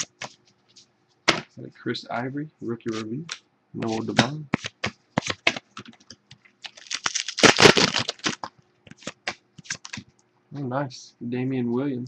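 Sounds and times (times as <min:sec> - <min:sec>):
cards rustling scrape: 0:00.0 - 0:01.5, 0:02.9 - 0:10.0
trading cards flipped by hand: 0:00.0 - 0:01.5, 0:02.9 - 0:10.1.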